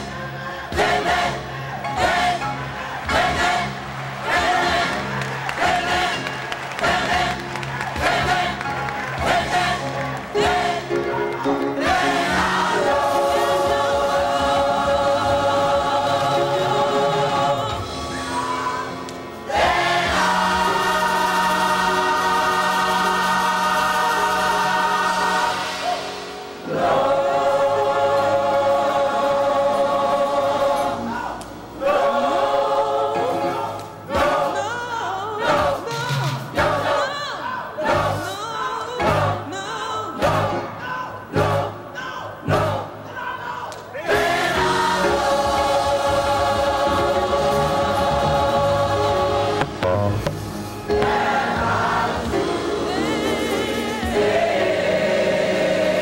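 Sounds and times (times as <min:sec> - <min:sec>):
gospel choir singing: 0:00.0 - 0:56.0.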